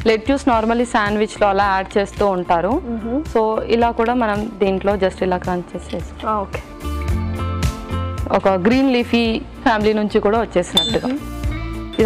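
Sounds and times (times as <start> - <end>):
background music: 0.0 - 12.0
woman speaking: 8.3 - 11.2
metal spoon clinking glass bowl: 10.7 - 11.2.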